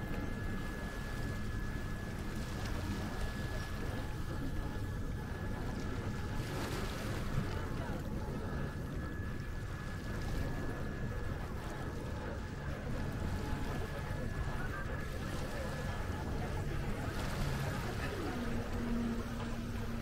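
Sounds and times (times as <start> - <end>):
boat motor hum: 0.0 - 20.0
water noise: 0.0 - 20.0.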